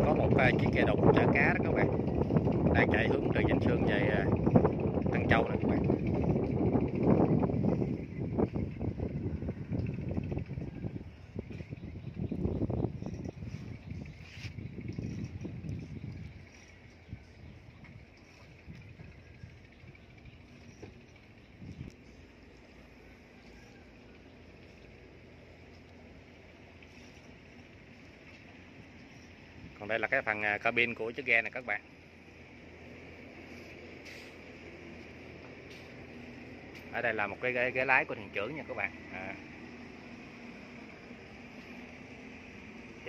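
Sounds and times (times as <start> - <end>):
wind buffeting microphone: 0.0 - 22.6, 25.0 - 31.2.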